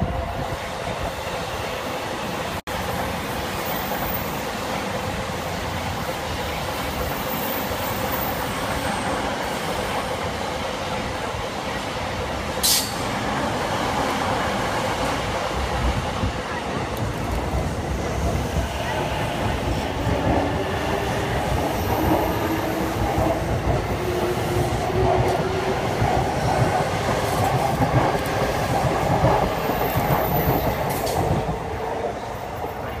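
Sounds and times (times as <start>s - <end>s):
train wheels rumbling on rails: 0.0s - 33.0s.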